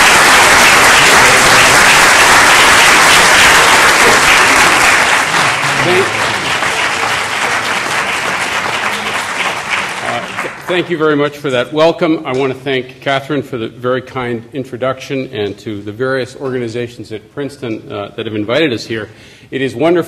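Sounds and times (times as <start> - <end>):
audience applauding: 0.0 - 10.9.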